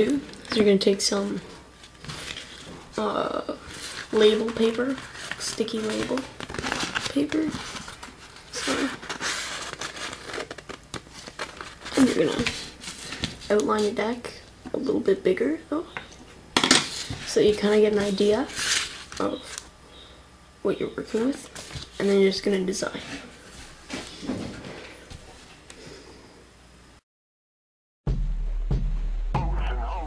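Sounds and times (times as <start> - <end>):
label paper crinkling: 0.0 - 14.0, 16.9 - 19.7, 21.1 - 24.1.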